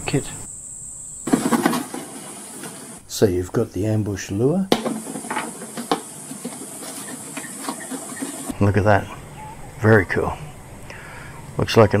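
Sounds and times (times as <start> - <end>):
cardboard rustling and scraping: 1.3 - 3.0, 4.8 - 8.6.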